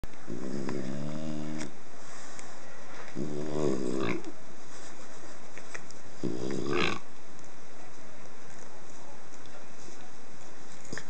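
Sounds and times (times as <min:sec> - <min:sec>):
small dog grumbling: 0:00.3 - 0:01.7, 0:03.2 - 0:04.3, 0:06.2 - 0:07.1.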